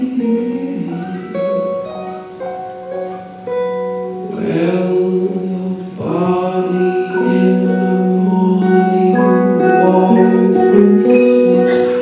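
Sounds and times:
man singing long wordless notes: 0:00.0 - 0:03.3, 0:04.0 - 0:12.0
soft instrumental backing: 0:00.0 - 0:12.0.

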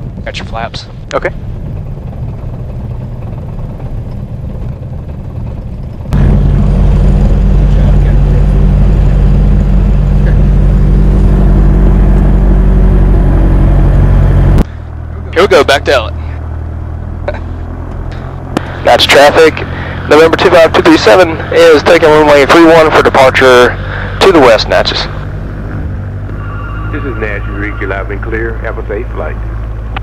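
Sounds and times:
propeller plane engine droning: 0:00.0 - 0:30.0.

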